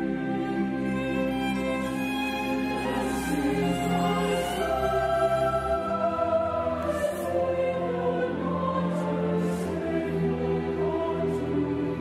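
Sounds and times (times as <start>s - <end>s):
choir with orchestra: 0.0s - 12.0s.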